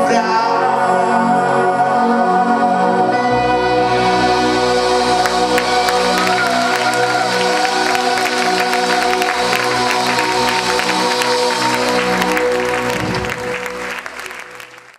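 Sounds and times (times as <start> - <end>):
sustained keyboard chords: 0.0 - 14.9
audience applause: 4.9 - 14.9.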